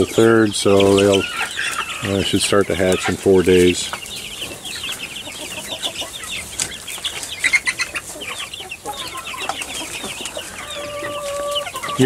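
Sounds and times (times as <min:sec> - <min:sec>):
chicks peeping: 0:00.0 - 0:12.0.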